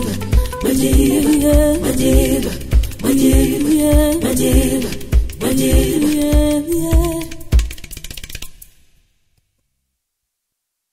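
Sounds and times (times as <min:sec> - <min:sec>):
percussion hit with rattle: 0:00.0 - 0:09.1.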